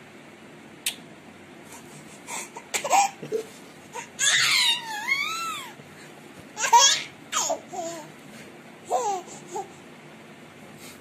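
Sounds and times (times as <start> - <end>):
baby laughing: 1.8 - 5.8, 6.6 - 8.1, 8.9 - 9.7
baby squealing: 4.0 - 5.8, 6.6 - 7.9.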